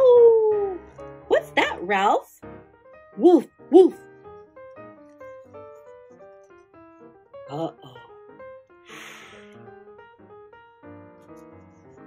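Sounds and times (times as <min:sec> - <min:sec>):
piano music: 0:00.0 - 0:12.0.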